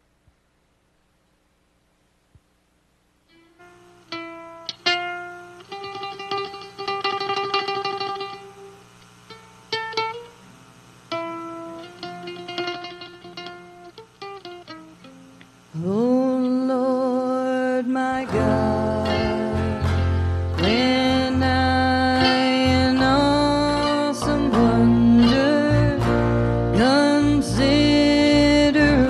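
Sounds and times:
mandolin melody: 3.3 - 10.4, 11.1 - 15.4, 18.1 - 29.0
acoustic guitar picking: 3.3 - 29.0.

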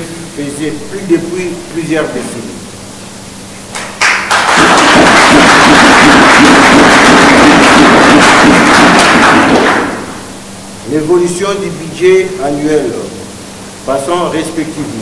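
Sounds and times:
audience applauding: 3.7 - 10.2.

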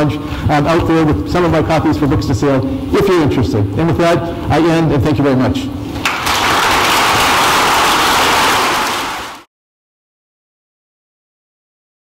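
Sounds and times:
audience applause: 6.0 - 9.5.

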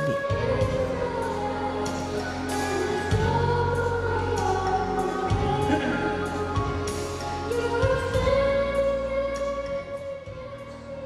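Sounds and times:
deep steady notes: 0.0 - 11.0
girl singing: 0.0 - 11.0.

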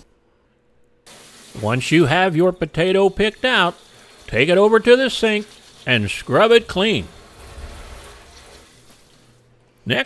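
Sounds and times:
tap water running into sink: 1.1 - 9.4.

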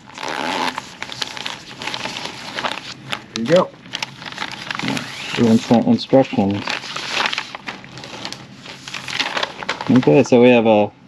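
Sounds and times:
plastic bag ripping: 0.0 - 10.3
plastic crinkling: 0.0 - 10.4.

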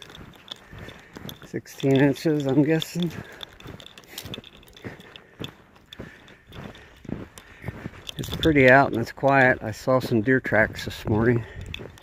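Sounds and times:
footsteps crunching through snow: 0.0 - 12.0.

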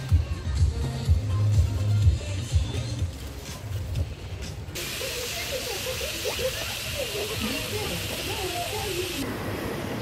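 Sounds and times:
background music: 0.0 - 4.8
people's voices: 4.5 - 9.2
fountain water spraying: 4.8 - 10.0.

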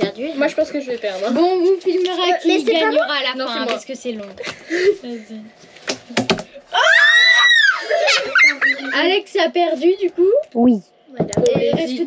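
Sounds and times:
child shrieking: 6.7 - 8.0.

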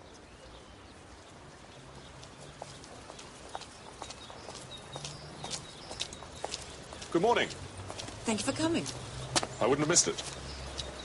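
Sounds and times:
footsteps clicking on pavement: 0.1 - 11.0.

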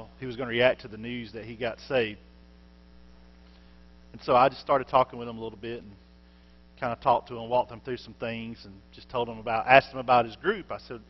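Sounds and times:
man talking: 0.0 - 2.2, 4.1 - 6.0, 6.8 - 11.0
electrical mains hum: 0.0 - 11.0.

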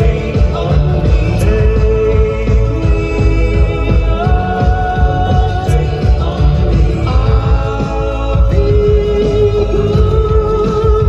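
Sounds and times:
rock music with singing: 0.0 - 11.0.

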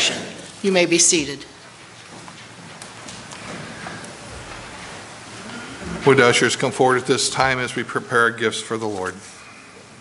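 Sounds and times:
shuffling: 1.6 - 6.1.

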